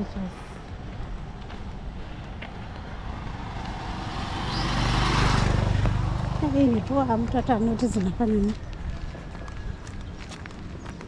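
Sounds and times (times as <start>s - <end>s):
vehicle passing by: 1.6s - 8.2s.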